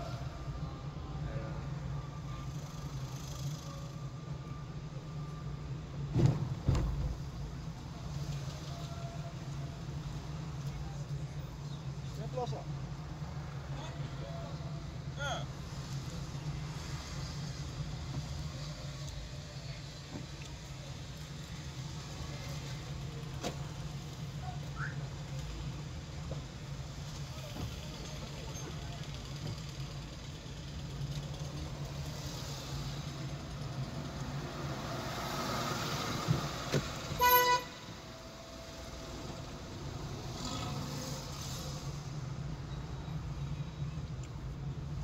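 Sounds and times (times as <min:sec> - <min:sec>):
car engine and road drone: 0:00.0 - 0:45.0
car horn toot: 0:37.2 - 0:38.0.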